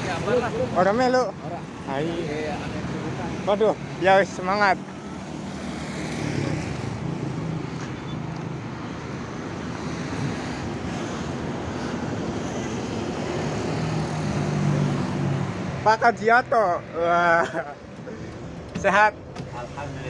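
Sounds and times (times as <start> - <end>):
passing road traffic: 0.0 - 20.0.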